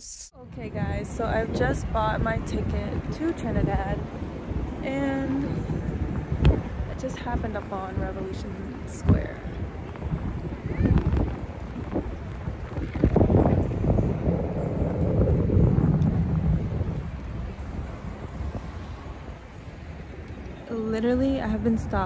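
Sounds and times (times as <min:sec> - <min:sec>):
wind buffeting microphone: 0:00.3 - 0:22.0.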